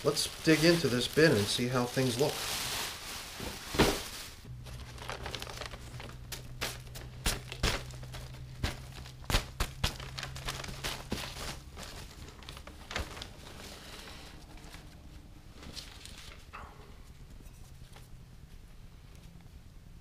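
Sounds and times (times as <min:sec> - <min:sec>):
dry leaves crackling: 0:00.0 - 0:14.8
newspaper crinkling and rustling: 0:00.0 - 0:16.5.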